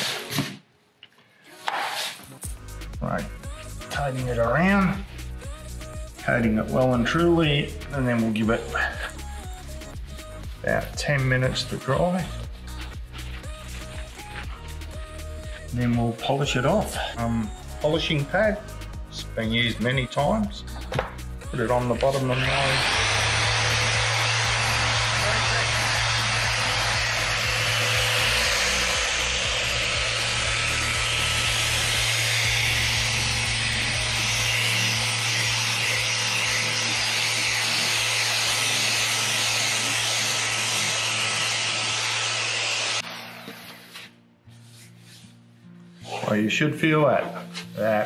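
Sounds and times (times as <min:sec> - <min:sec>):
electric sander whirring: 0:21.7 - 0:43.9.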